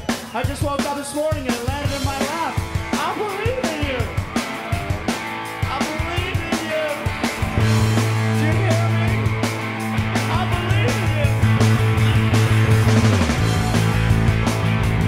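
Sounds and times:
drums: 0:00.0 - 0:15.0
electric bass: 0:01.8 - 0:15.0.

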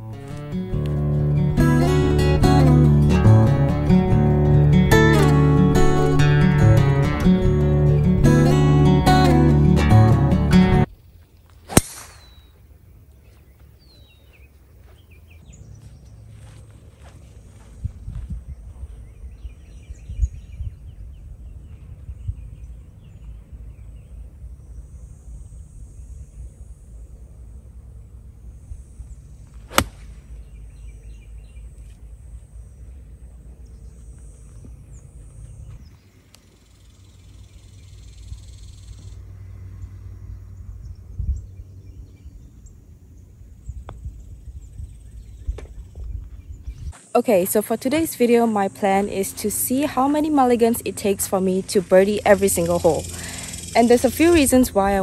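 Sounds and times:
birds chirping: 0:10.5 - 0:55.0
golf club striking ball: 0:11.7 - 0:12.5, 0:29.7 - 0:30.2
wind rumble on microphone: 0:17.2 - 0:27.3, 0:40.1 - 0:47.0.

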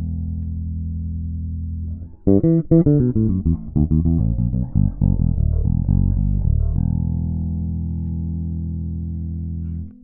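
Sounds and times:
electric bass plucked notes: 0:00.0 - 0:10.0
bass note ringing: 0:02.0 - 0:08.0.

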